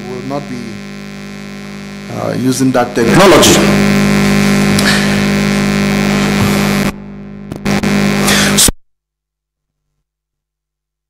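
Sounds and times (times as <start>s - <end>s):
electrical buzz and hum with hiss: 0.0s - 8.8s.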